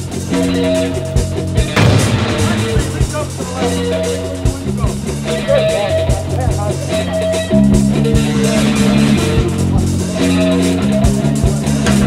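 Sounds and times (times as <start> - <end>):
rock band music: 0.0 - 12.0
explosion blast: 1.8 - 4.0.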